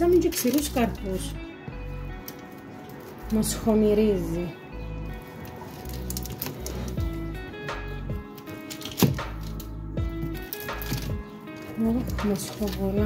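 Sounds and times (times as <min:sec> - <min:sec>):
music with bass beat: 0:06.8 - 0:08.4, 0:09.1 - 0:11.2.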